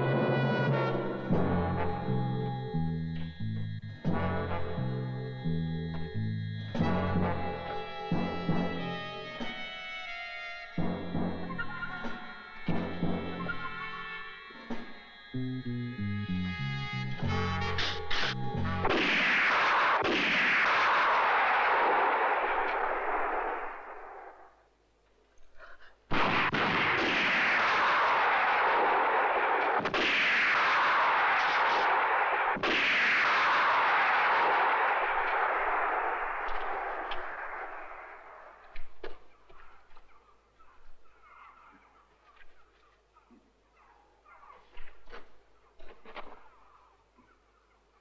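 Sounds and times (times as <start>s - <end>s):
gunshots echoing: 17.8s - 24.5s, 26.1s - 38.7s.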